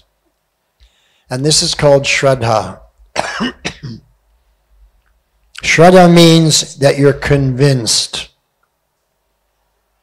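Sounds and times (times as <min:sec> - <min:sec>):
man coughing: 0:03.2 - 0:04.1.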